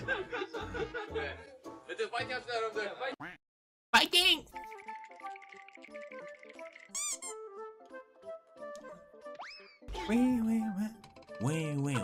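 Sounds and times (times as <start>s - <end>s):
background music: 0.0s - 3.3s, 4.0s - 12.0s
cartoon squeak: 6.9s - 7.5s, 9.4s - 9.9s.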